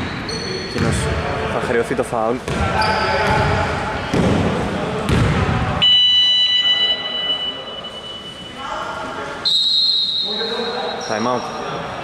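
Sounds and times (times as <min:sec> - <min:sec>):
court noise: 0:00.0 - 0:12.0
referee's whistle: 0:05.8 - 0:08.5, 0:09.4 - 0:11.6.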